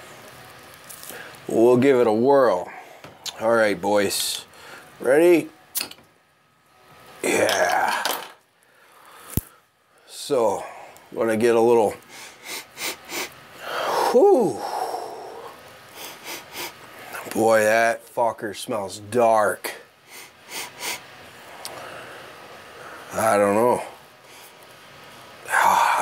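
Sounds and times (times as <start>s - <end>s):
bottle cap metallic click: 5.8s - 6.0s
man sniffing: 12.1s - 16.8s, 20.1s - 21.0s.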